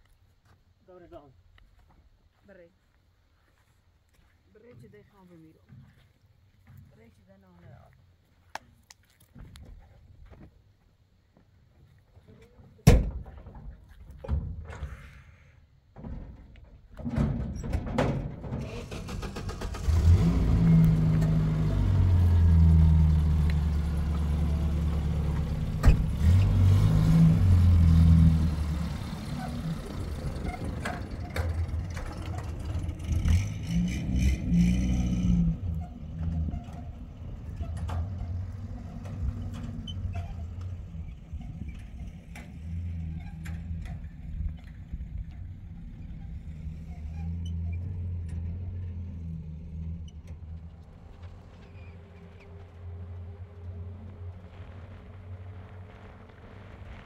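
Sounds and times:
truck engine starting and revving: 18.4 - 57.0.

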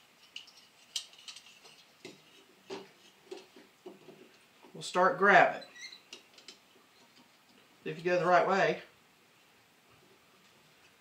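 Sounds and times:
small metallic clicks and scrapes: 0.0 - 4.4, 5.7 - 8.2.

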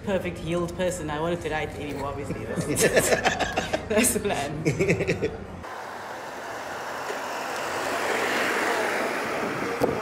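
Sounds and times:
passing vehicle tyre and engine hiss: 5.6 - 10.0.

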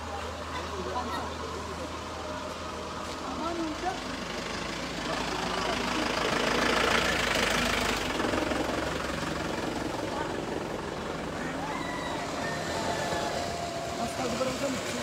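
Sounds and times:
people's voices: 0.0 - 15.0
motor vehicle passing: 1.5 - 15.0.

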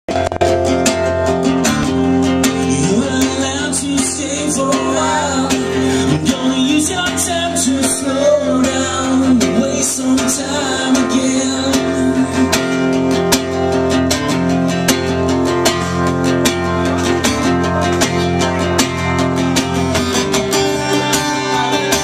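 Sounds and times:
acoustic guitar strummed: 0.1 - 22.0
man singing: 2.4 - 12.8.

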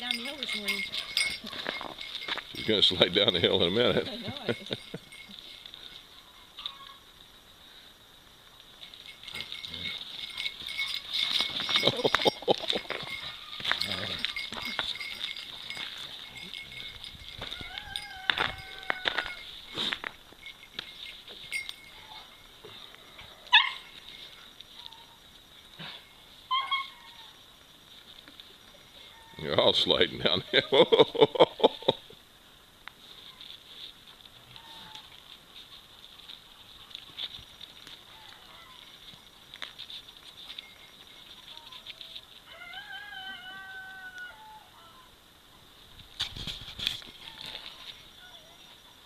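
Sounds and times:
dogs play-wrestling: 9.2 - 17.6
dog yipping: 23.5 - 23.9, 26.5 - 27.3.

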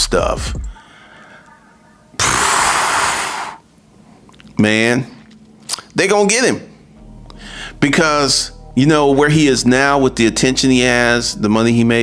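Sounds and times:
breathy exhale close to microphone: 2.2 - 3.6, 7.4 - 7.8.

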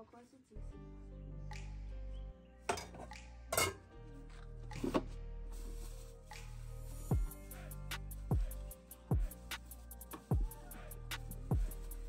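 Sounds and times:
background music with bass line: 0.7 - 12.0
metal spoon clinking on pots: 2.7 - 3.8.

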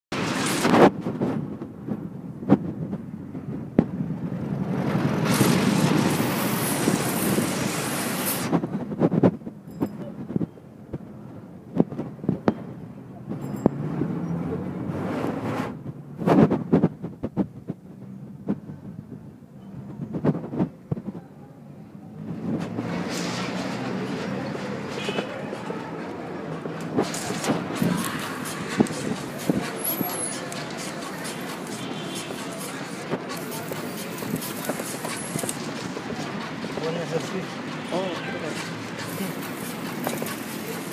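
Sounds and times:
rush of noise: 0.1 - 12.5, 13.2 - 40.9
low street rumble: 0.1 - 40.9.

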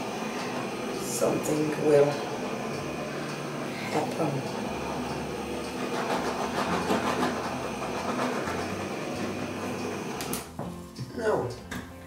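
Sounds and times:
heat gun fan blowing: 0.0 - 10.6.

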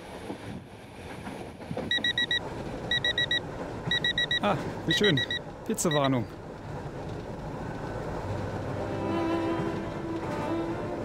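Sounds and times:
train running rumble: 0.0 - 11.0
smartphone beeping: 1.9 - 6.2.

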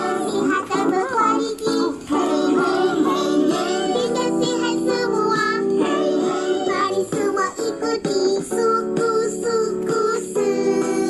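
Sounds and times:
children's song with vocals: 0.0 - 11.0.

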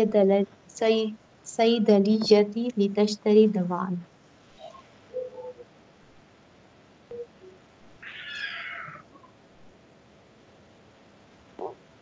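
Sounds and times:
faint room noise: 0.0 - 12.0
high-pitched cry: 8.0 - 9.0.

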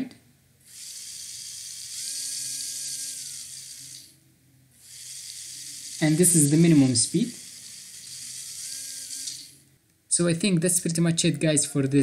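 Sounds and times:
toy motor gear whine: 0.6 - 4.2, 4.8 - 9.6.

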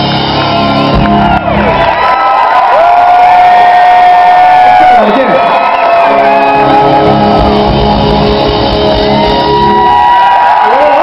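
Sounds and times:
live rock band playing: 0.0 - 2.2, 5.9 - 10.6
audience shouting and cheering: 0.0 - 11.0.

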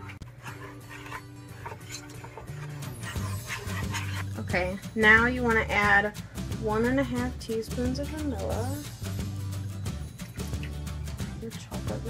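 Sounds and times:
whisk stirring in a metal pot: 0.0 - 4.8
background music: 0.0 - 12.0.

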